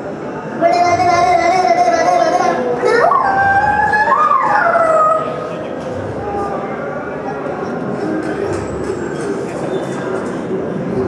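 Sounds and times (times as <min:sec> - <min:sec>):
children hooting through cupped hands: 0:02.8 - 0:05.4.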